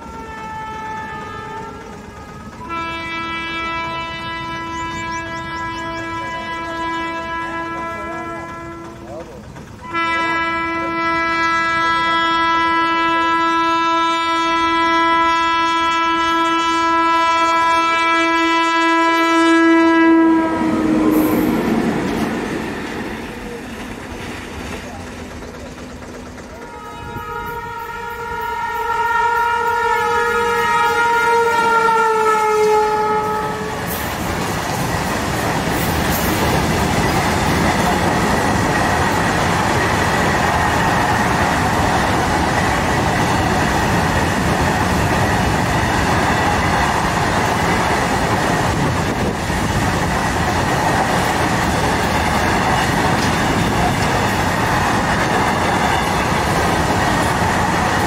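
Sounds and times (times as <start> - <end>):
train horn blast: 0.0 - 9.2, 9.8 - 23.7, 26.5 - 34.6, 51.9 - 57.0
wagons rumbling and clattering: 7.5 - 9.8, 21.6 - 27.7, 33.8 - 58.0.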